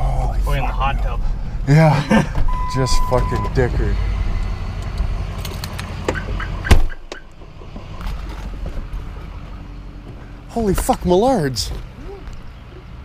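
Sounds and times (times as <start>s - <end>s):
truck engine rumble inside cab: 0.0s - 13.0s.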